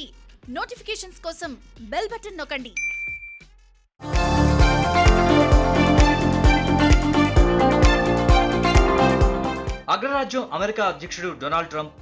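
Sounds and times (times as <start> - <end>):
electronic notification ding: 2.8 - 3.4.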